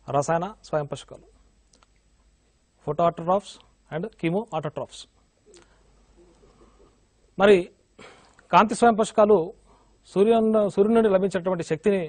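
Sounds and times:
man lecturing: 0:00.0 - 0:01.4, 0:02.8 - 0:05.2, 0:07.4 - 0:07.8, 0:08.5 - 0:12.0.

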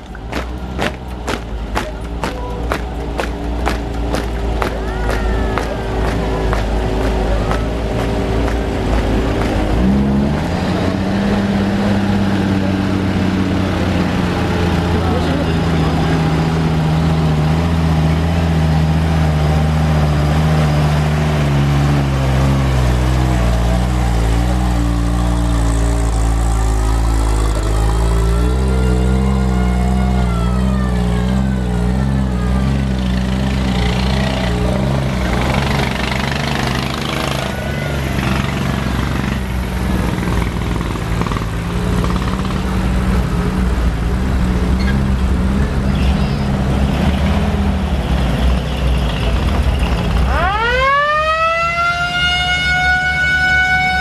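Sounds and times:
jeep and truck engines driving past: 0:00.0 - 0:54.0.

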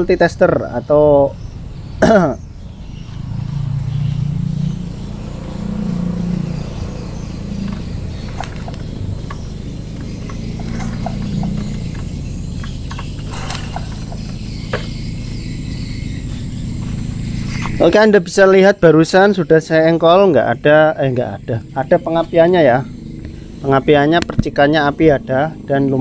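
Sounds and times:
engine kick-started slowly: 0:07.5 - 0:17.7
sharp clicks: 0:07.6 - 0:14.9.

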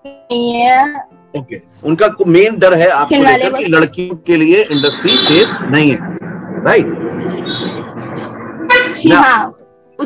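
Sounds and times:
steady background noise: 0:02.9 - 0:10.0
vehicle horn toot: 0:04.6 - 0:05.6, 0:08.7 - 0:09.0.

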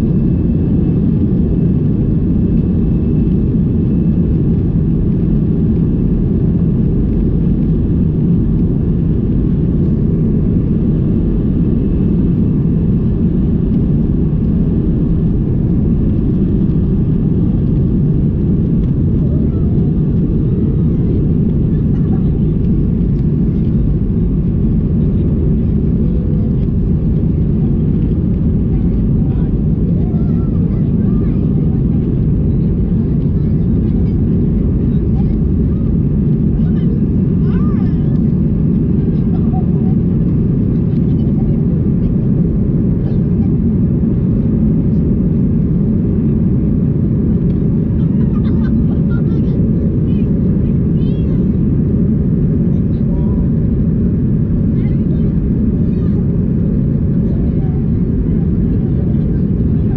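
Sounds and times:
jet engines and airflow in cabin: 0:00.0 - 0:59.9.

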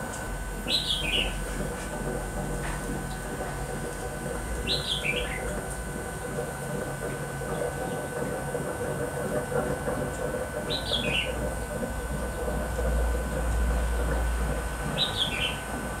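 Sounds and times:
steady background hum: 0:00.0 - 0:16.0.

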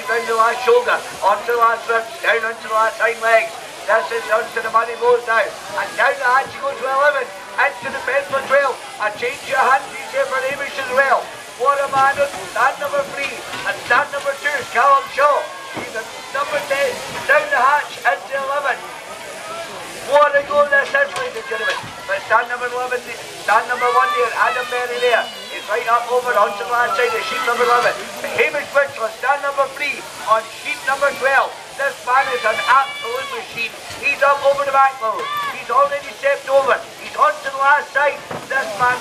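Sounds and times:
man giving fast commentary: 0:00.0 - 0:18.9, 0:20.0 - 0:39.0
faint steady hiss: 0:00.0 - 0:39.0.

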